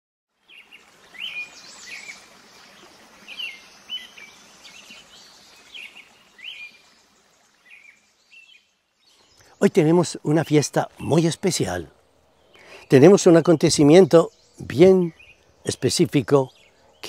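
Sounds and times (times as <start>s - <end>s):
steady outdoor hiss: 0.3s - 17.0s
birds chirping: 0.4s - 17.0s.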